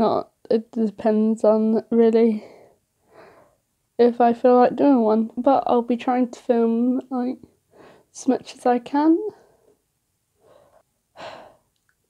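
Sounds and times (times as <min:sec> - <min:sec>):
person breathing in: 0:02.4 - 0:03.6, 0:10.4 - 0:11.7.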